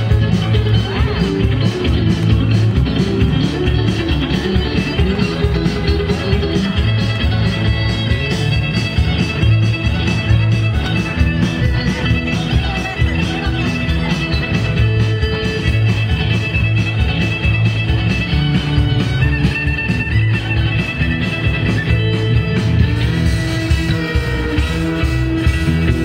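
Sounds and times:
drums with steady beat: 0.0 - 26.0
electric guitar: 0.0 - 26.0
low bass notes: 0.0 - 26.0.

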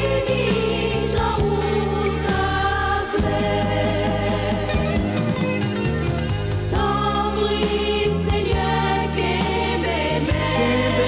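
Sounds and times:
women singing gospel in harmony: 0.0 - 5.4, 6.7 - 11.0
instrumental backing with bass: 0.0 - 11.0.

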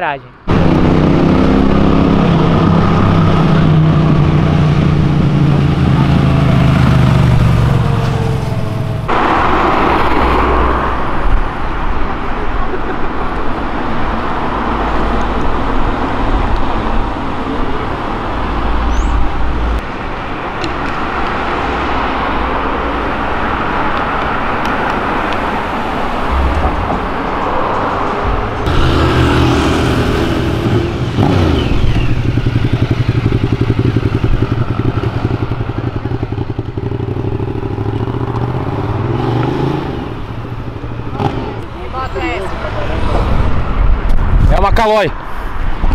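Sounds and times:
cars driving past: 0.4 - 45.9
motorcycle engine: 0.5 - 11.3, 28.2 - 42.4.

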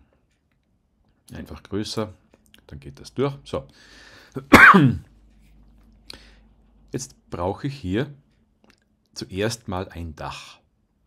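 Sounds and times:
man breathing in: 3.8 - 4.4, 6.1 - 6.5
man clearing throat: 4.5 - 5.1.

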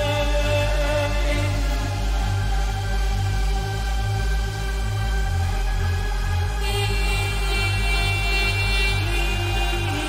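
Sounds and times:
pulsing bass beat: 0.0 - 10.0.

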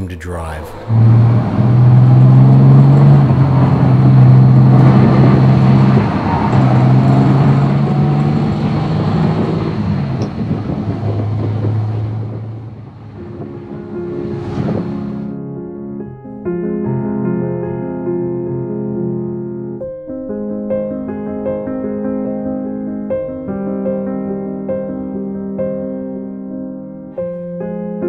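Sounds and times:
tyre and road noise: 0.0 - 15.3
piano music: 0.0 - 28.0
car engine running: 0.1 - 15.3.

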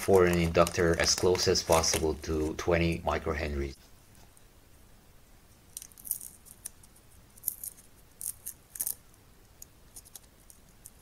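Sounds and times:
plastic tape crackling and clicking: 0.0 - 2.6, 5.7 - 11.0.

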